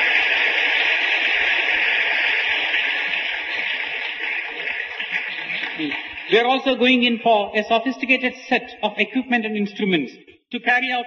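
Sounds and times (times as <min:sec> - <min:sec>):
audience applause: 0:00.0 - 0:07.1.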